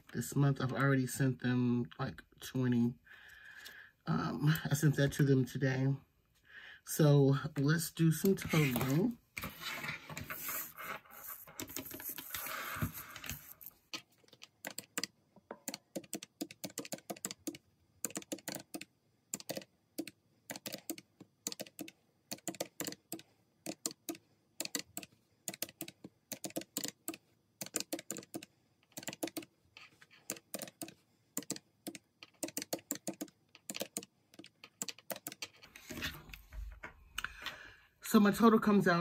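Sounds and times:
calculator keys clicking: 14.3s - 29.5s, 30.2s - 35.6s.

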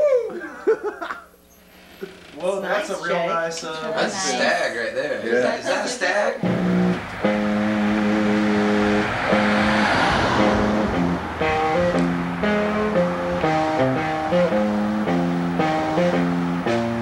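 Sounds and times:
guitar music: 6.4s - 17.0s.

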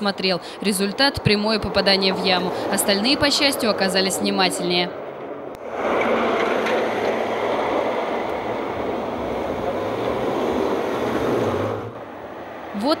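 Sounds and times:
cars and truck passing: 0.0s - 13.0s.

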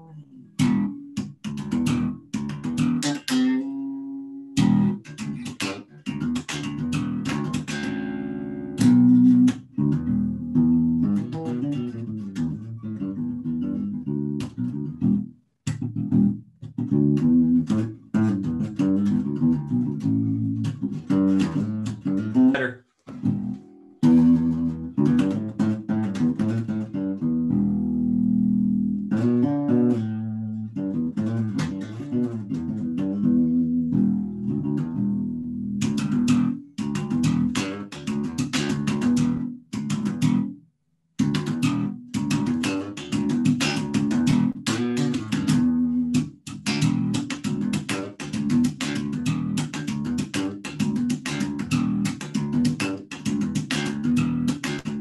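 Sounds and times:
electric bass funk line: 0.0s - 40.6s, 41.2s - 55.0s.

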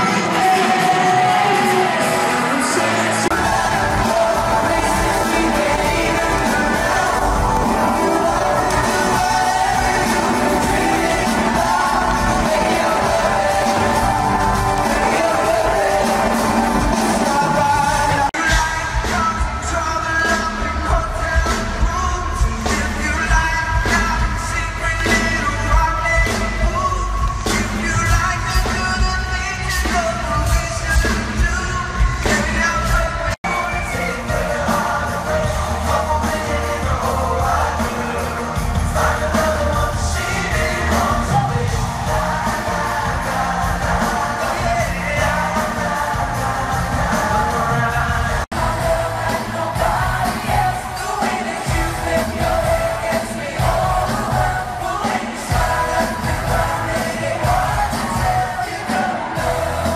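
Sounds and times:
live pop band with singing: 0.0s - 59.9s.

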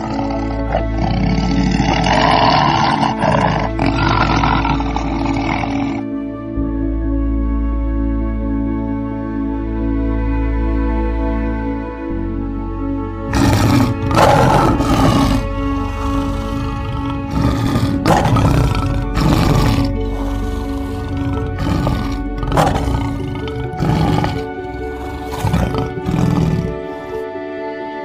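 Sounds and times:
lion roaring: 0.0s - 6.1s, 13.3s - 27.2s
background music: 0.0s - 28.0s.

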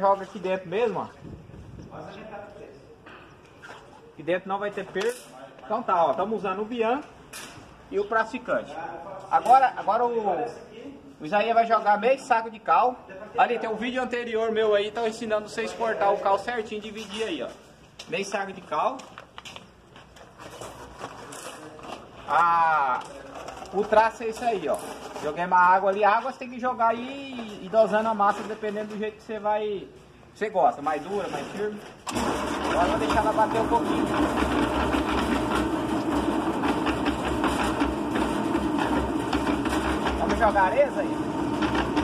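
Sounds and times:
concrete mixer running: 20.4s - 25.5s, 31.1s - 42.0s.

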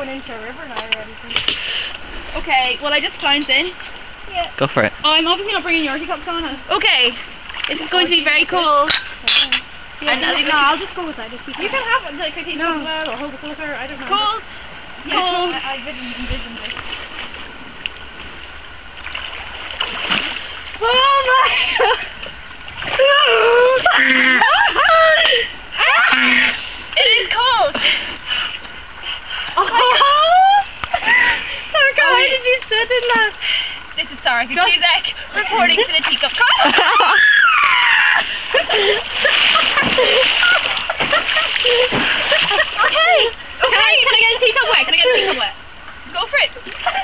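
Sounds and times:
water splashing in stream: 0.7s - 21.4s, 22.0s - 29.0s, 35.2s - 47.0s
woman exclaiming: 20.8s - 21.9s, 23.0s - 26.4s, 29.7s - 31.1s, 34.6s - 38.3s
women laughing: 20.9s - 22.2s, 22.9s - 26.2s, 29.5s - 32.3s, 36.4s - 45.6s, 46.6s - 47.0s.

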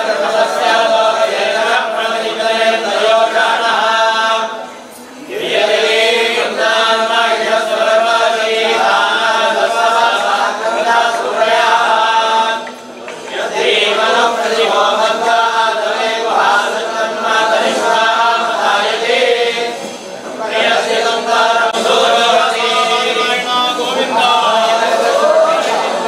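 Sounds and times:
men chanting together: 0.0s - 26.0s.

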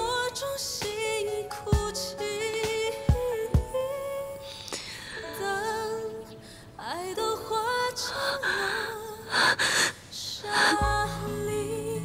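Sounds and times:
slow ballad sung by woman: 0.0s - 12.0s
woman crying with gasping sobs: 8.1s - 11.0s.

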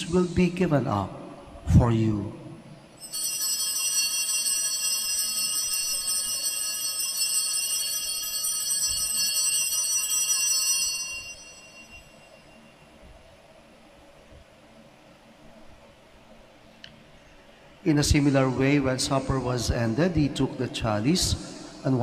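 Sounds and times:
small bells ringing: 3.0s - 12.8s.

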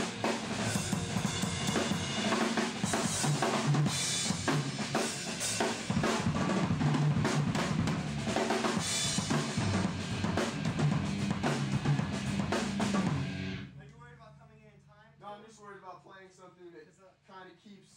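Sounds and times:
rock drum kit playing: 0.0s - 13.7s.

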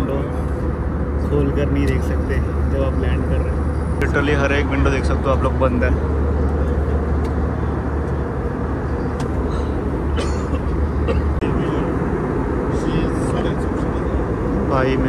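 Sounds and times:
airliner cabin engine drone: 0.0s - 15.0s.

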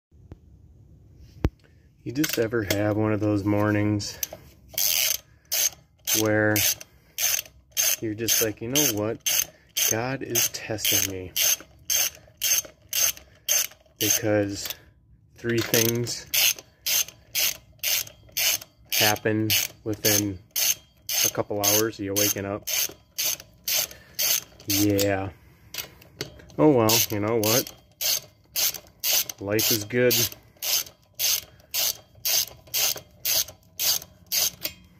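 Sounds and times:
ratchet wrench clicking: 4.0s - 14.8s, 15.4s - 34.9s.

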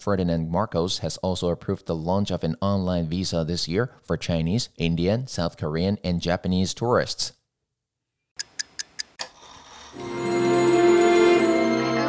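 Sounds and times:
music: 10.0s - 12.0s.

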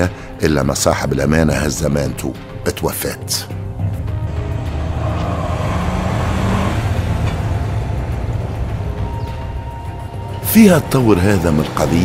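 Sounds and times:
car engine and road noise: 3.5s - 12.0s.

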